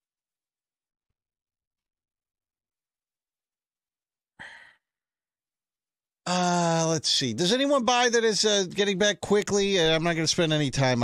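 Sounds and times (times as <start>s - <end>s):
breathy sigh: 4.4s - 4.9s.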